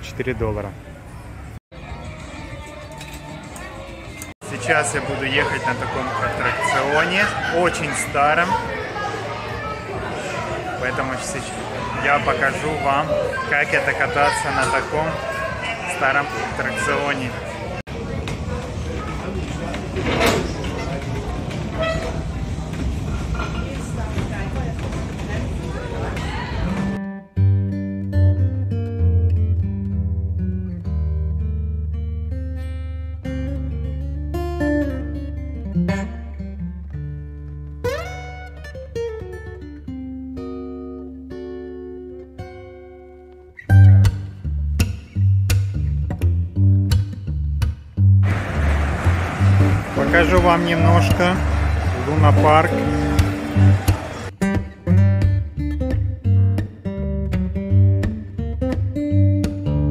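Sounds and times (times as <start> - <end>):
noisy location sound: 0.0 - 27.0, 48.2 - 54.5
background music with plucked guitar: 26.8 - 59.9.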